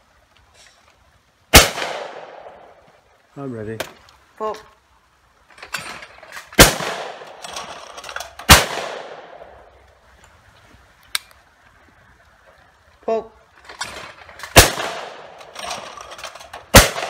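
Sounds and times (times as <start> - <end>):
shotgun shots with echo: 1.5 - 2.6, 6.6 - 7.3, 8.5 - 9.5, 14.5 - 15.3, 16.7 - 17.0.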